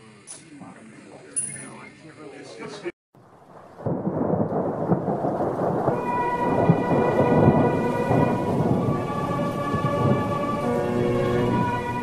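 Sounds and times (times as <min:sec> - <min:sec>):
rain: 0:03.2 - 0:12.0
thunder: 0:03.2 - 0:12.0
sustained musical chord: 0:05.9 - 0:12.0.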